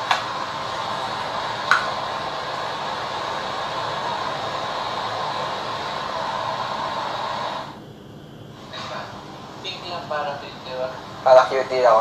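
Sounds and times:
steady rushing noise: 0.0s - 7.8s.

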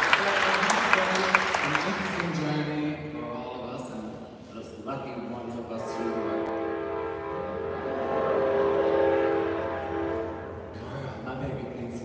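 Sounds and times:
live music held chord: 5.1s - 11.8s.

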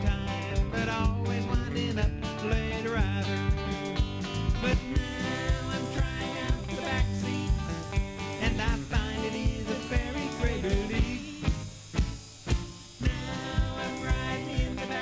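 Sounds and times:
country gospel band playing: 0.0s - 15.0s
drum hits: 3.5s - 15.0s.

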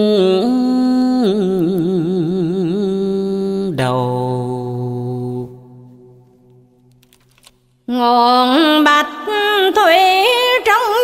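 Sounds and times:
person chanting with vibrato: 0.0s - 6.2s.

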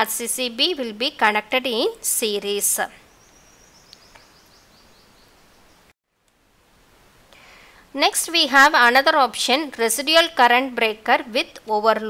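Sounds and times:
microphone hiss: 1.7s - 12.0s.

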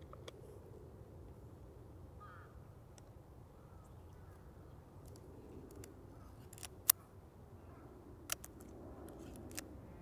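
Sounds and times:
camera faint clicks: 5.0s - 7.0s, 8.3s - 9.7s
camera sharp metallic clicks: 5.1s - 7.0s, 8.3s - 9.7s.

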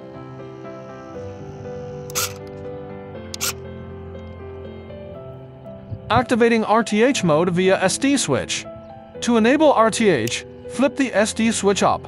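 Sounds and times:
background music of sustained notes: 0.0s - 12.0s
short sharp clicks: 2.1s - 2.5s, 3.3s - 3.6s.

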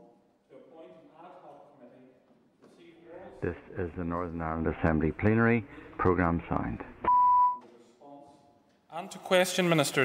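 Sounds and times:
high electronic beep: 7.0s - 7.6s.

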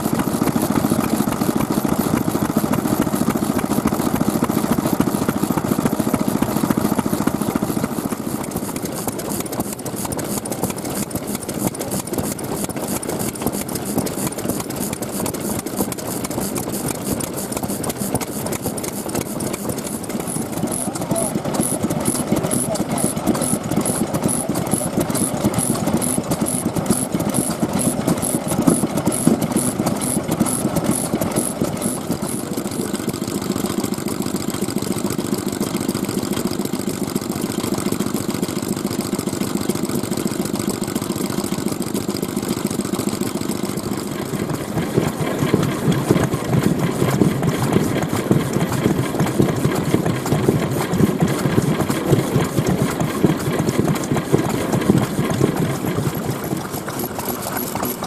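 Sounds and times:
stationary engines running: 0.0s - 58.0s
fast high ticking: 0.2s - 33.4s.

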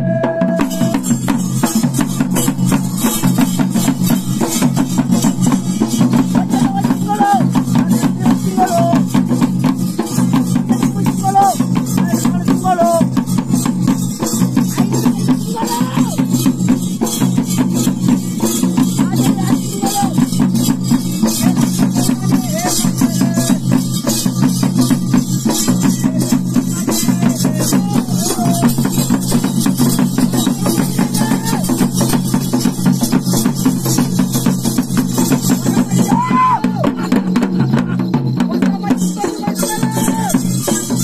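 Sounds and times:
falling high tone: 0.0s - 1.0s
fast barrel drumming: 0.0s - 41.0s.

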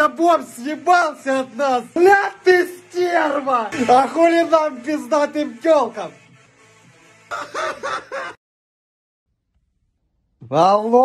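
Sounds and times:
man shouting: 0.0s - 6.1s
man cackling laugh: 7.3s - 8.4s.

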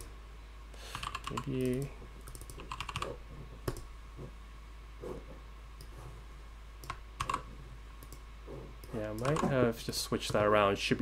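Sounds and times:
typing on computer keyboard: 0.9s - 3.8s, 6.8s - 7.4s.

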